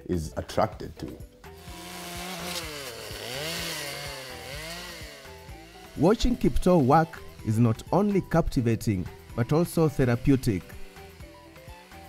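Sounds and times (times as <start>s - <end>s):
chainsaw engine revving: 1.5s - 12.0s.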